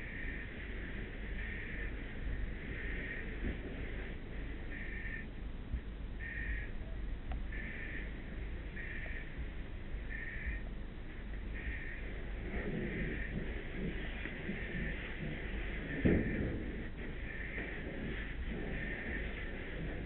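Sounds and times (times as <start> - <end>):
low rumble: 0.0 - 20.0
alarm beeping: 7.5 - 9.4, 10.1 - 10.7.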